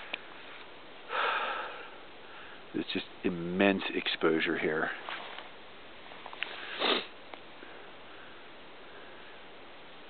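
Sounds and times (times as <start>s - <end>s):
person sniffing: 6.6s - 7.2s.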